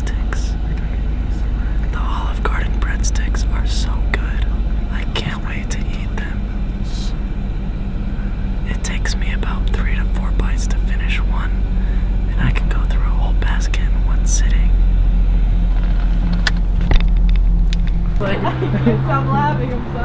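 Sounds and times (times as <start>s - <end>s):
person whispering: 0.0s - 7.2s, 8.7s - 11.6s, 12.2s - 14.8s
low rumble: 0.0s - 20.0s.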